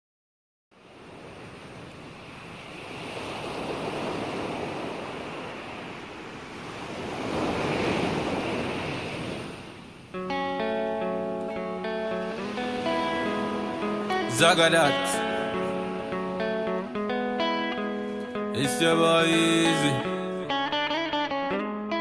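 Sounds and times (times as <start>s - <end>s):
ocean surf rushing: 0.8s - 21.3s.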